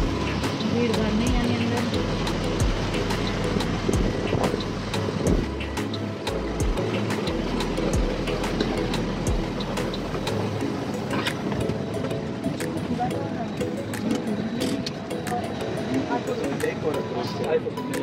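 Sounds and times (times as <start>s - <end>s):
aircraft and machinery drone: 0.0s - 18.0s.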